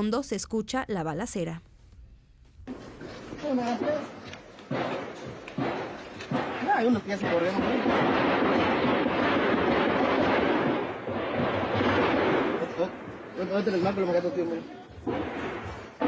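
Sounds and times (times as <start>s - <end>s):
dense continuous gunfire noise: 2.6s - 16.0s
gunshots: 2.6s - 16.0s.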